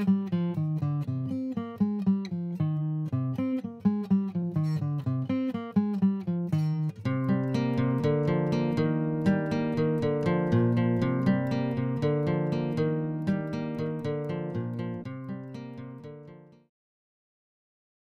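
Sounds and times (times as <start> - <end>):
acoustic guitar music: 0.0 - 16.7.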